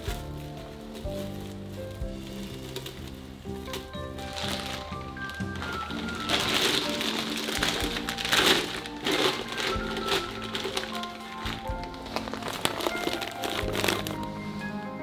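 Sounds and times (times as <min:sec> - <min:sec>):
plastic bag crinkling: 0:00.0 - 0:14.4
background music: 0:00.0 - 0:15.0.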